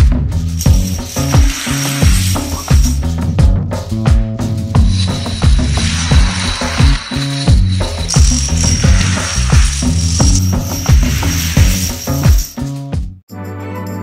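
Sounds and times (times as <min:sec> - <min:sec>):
background music with steady beat: 0:00.0 - 0:14.0
dominoes toppling clatter: 0:00.6 - 0:02.9, 0:04.9 - 0:12.6.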